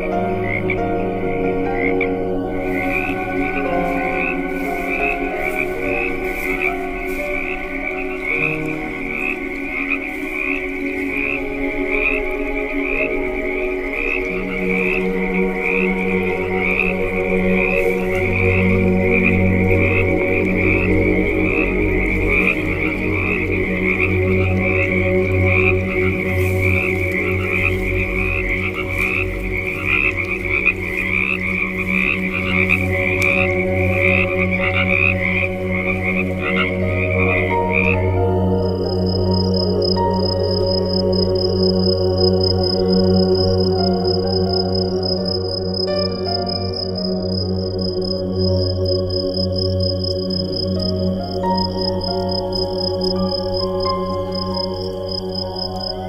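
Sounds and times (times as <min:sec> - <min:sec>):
ambient music with drone tones: 0:00.0 - 0:56.0
frogs calling in pulsing rhythm: 0:00.0 - 0:56.0.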